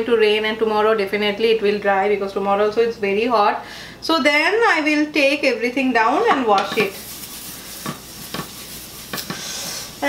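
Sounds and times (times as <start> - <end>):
faint hiss of a griddle: 6.1 - 10.0
light scrapes and taps: 6.6 - 9.4.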